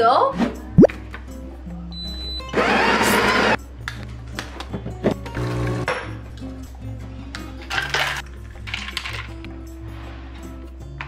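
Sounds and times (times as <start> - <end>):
background music: 0.0 - 11.0
coffee grinder running: 2.6 - 3.6.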